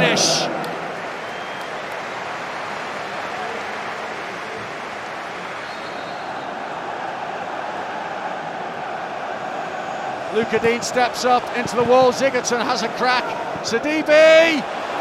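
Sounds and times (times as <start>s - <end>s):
steady crowd noise: 0.0s - 15.0s.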